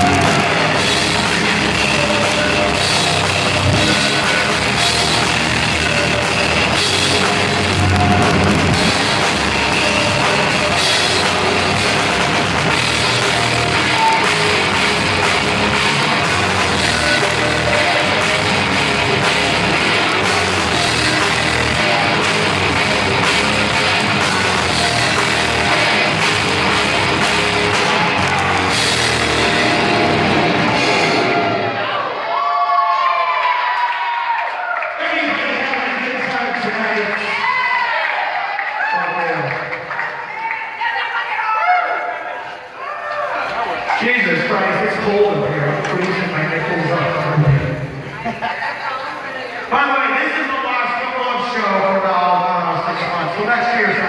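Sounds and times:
live metal band playing: 0.0s - 31.9s
crowd cheering and shouting: 0.0s - 54.0s.

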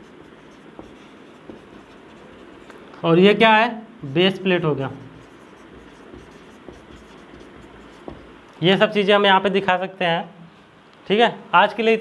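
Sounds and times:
marker pen writing on paper: 0.0s - 2.9s, 4.9s - 8.4s.

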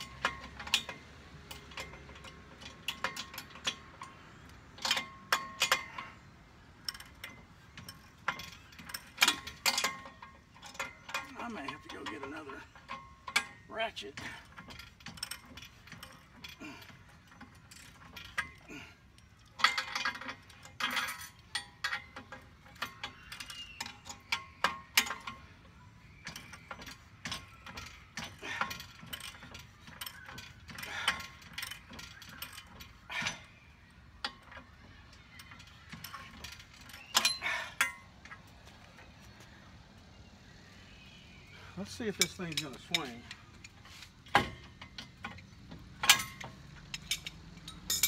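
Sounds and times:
metal clinks: 0.0s - 39.5s, 40.9s - 48.0s.

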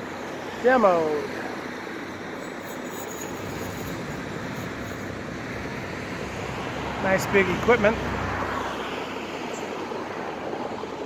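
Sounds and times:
distant engines rumbling: 0.0s - 11.0s.

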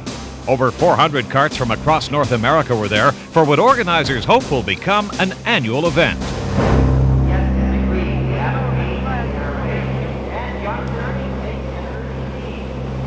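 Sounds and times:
go-kart engines droning: 6.2s - 13.0s
faint voices: 7.3s - 13.0s.

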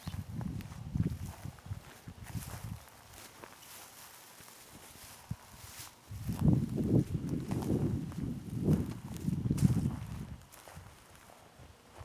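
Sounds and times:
footsteps on dry grass: 0.0s - 12.0s.

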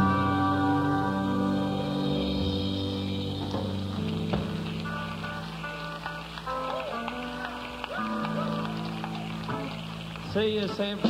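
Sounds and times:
country rock band playing: 0.0s - 11.0s.

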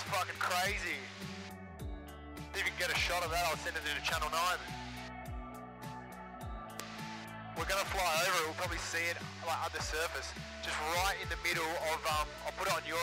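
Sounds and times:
deep falling bass beat: 4.0s - 8.0s.

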